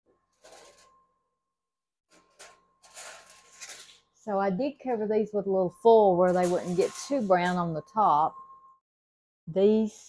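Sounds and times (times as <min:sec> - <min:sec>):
aluminium foil crinkling: 0:02.2 - 0:04.1, 0:06.3 - 0:07.5.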